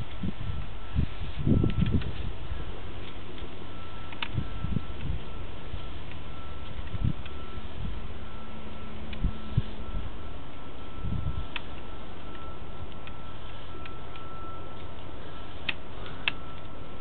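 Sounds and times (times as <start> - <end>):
electrical hum and hiss: 0.0 - 17.0
clicks: 3.0 - 7.5, 9.0 - 9.3, 11.5 - 16.8.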